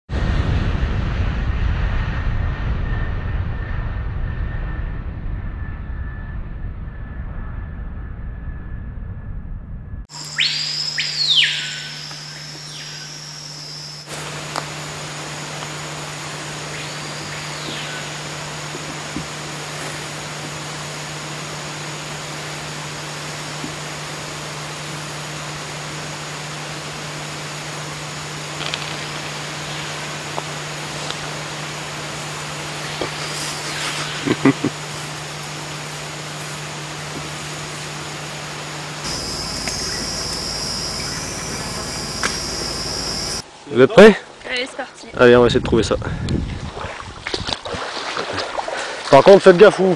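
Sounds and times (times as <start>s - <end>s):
aircraft engine drone: 0.1s - 43.4s
steady low hum: 0.2s - 43.6s
whistled bird calls: 10.1s - 14.1s, 16.6s - 18.4s, 39.1s - 43.4s
thin high whine: 10.1s - 44.2s.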